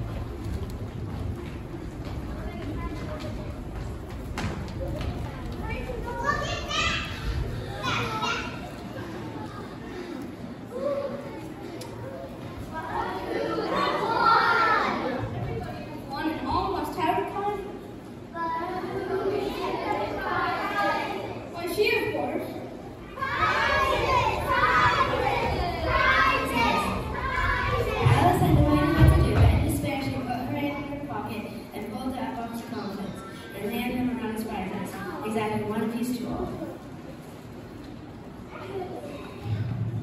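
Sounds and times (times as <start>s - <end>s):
rumble of movement on stage: 0.0s - 8.0s, 23.2s - 30.5s, 39.2s - 40.0s
children talking and calling out: 1.8s - 40.0s
children calling out: 5.6s - 15.4s, 22.9s - 29.1s.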